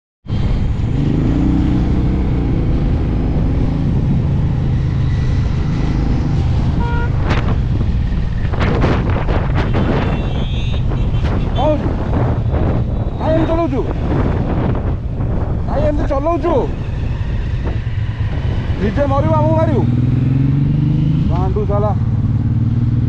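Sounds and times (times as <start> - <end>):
wind buffeting microphone: 0.3 - 23.0.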